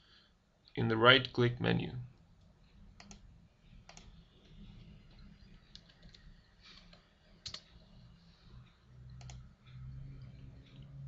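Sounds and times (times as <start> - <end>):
low hum: 2.2 - 11.0
computer mouse clicks: 2.4 - 8.0, 8.6 - 11.0.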